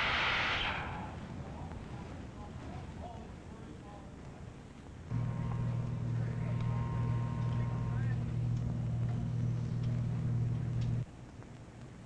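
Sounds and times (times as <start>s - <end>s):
low machine hum: 5.0s - 11.1s
faint high whine: 5.1s - 11.0s.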